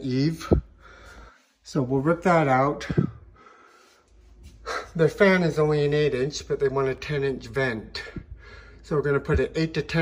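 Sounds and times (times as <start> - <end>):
man speaking: 0.0 - 0.7, 1.6 - 3.2, 4.7 - 8.2, 8.8 - 10.0
man breathing close to microphone: 0.4 - 1.6, 2.9 - 5.0, 8.0 - 8.9.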